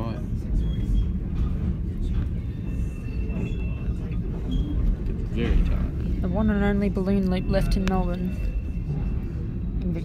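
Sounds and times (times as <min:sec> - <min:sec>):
train wheels rumbling on rails: 0:00.0 - 0:10.0.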